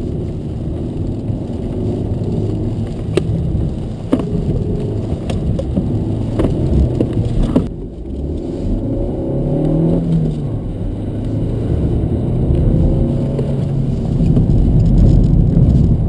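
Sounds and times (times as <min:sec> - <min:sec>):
car engine revving: 0:00.0 - 0:16.0
tyres hissing on wet road: 0:00.0 - 0:16.0.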